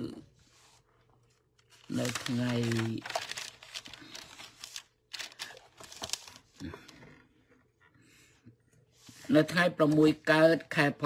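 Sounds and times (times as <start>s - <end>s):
crinkling handling noise: 0.5s - 7.8s
man speaking: 9.3s - 11.0s.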